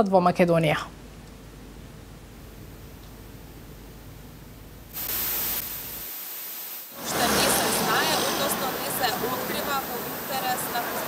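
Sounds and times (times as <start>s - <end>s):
static hiss: 1.9s - 11.0s.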